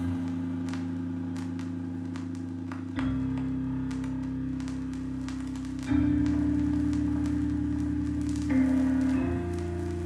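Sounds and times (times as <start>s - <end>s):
slow instrumental music: 0.0s - 10.0s.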